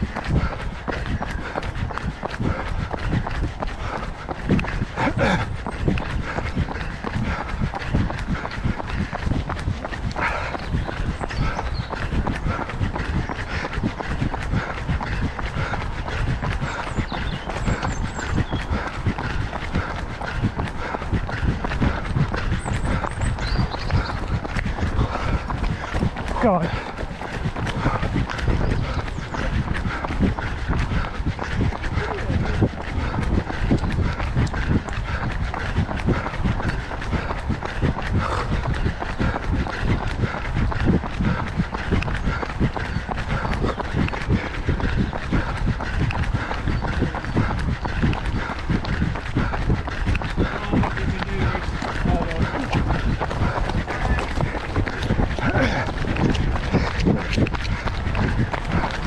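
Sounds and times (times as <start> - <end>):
running footsteps on wet tarmac: 0.0 - 59.0.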